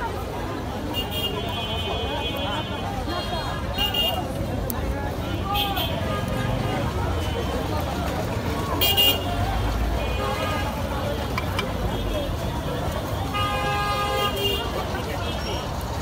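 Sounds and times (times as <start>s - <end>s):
crowd of voices talking: 0.0s - 16.0s
low traffic rumble: 0.0s - 16.0s.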